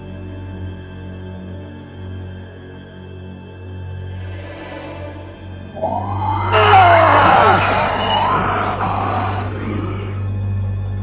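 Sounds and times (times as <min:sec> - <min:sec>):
low steady drone: 0:00.0 - 0:11.0
screeching wailing sound: 0:04.8 - 0:09.5.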